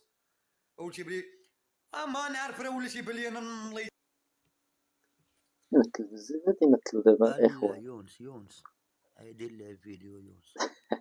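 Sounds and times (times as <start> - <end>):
man speaking: 7.2 - 10.6.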